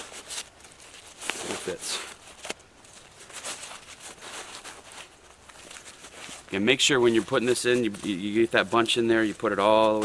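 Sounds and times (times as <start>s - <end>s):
fabric rustling: 0.0s - 10.0s.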